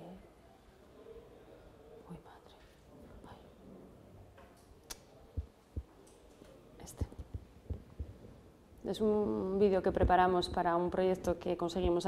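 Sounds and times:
microphone handling thumps: 0:07.0 - 0:08.3.

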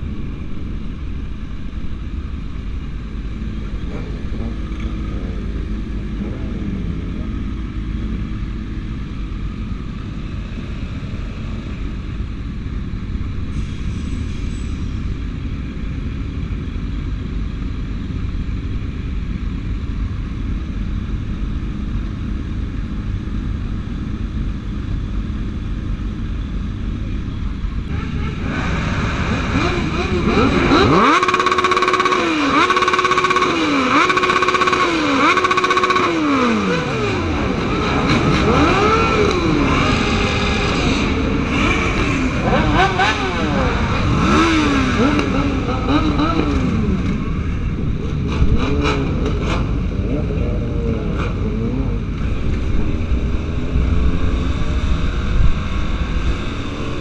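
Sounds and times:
motorcycle engine revving: 0:00.0 - 0:13.4, 0:26.8 - 0:57.0
motorcycles idling: 0:00.0 - 0:13.5, 0:14.5 - 0:57.0.

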